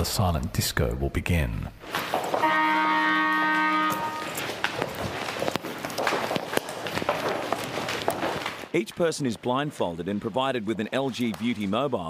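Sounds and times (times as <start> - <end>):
scuffing footsteps: 1.8 - 8.7
buzzing klaxon horn: 2.4 - 4.5.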